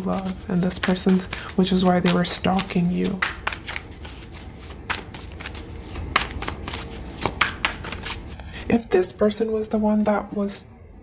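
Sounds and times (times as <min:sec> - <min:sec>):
cards being shuffled: 0:00.0 - 0:08.6.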